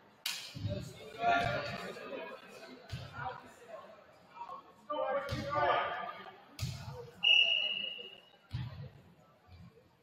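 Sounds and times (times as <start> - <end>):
voices calling out in gymnasium: 0.0 - 10.0.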